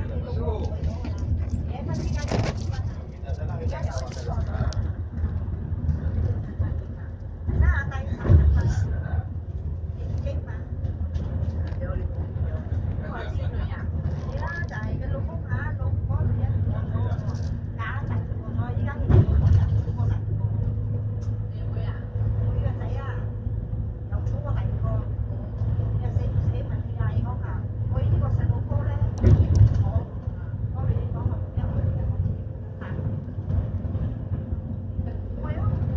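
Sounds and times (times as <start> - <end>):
people talking: 0.0 - 34.0, 34.9 - 35.9
bus engine and tyres rumbling: 0.0 - 35.9.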